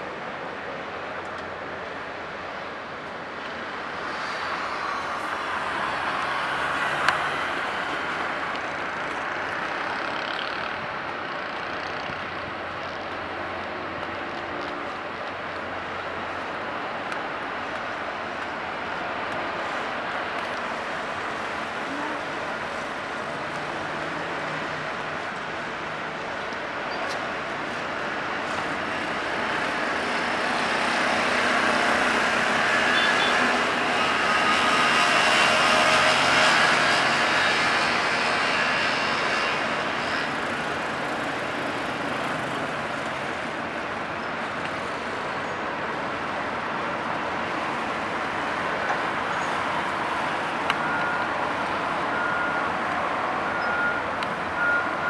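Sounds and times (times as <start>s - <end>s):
ship engines and propeller wash: 0.1s - 55.0s.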